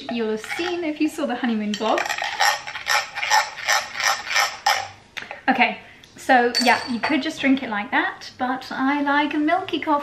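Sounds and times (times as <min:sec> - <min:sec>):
spoon scraping a glass: 0:00.4 - 0:00.8, 0:01.7 - 0:05.0.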